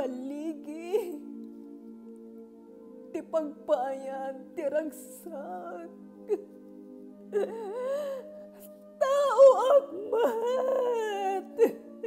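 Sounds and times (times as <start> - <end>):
soft background music: 0.0 - 12.0
woman wailing: 9.0 - 12.0.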